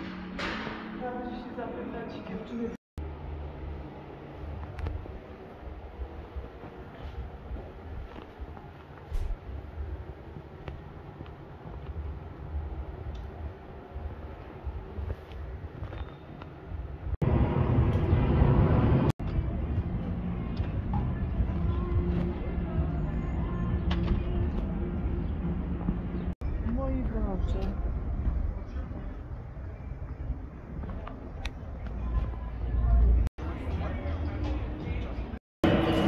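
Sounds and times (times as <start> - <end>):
steady background noise: 0.0 - 36.0.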